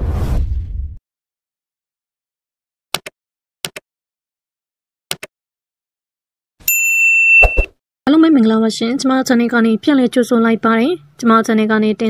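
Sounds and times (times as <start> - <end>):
high notification bell ding: 6.7 - 7.7.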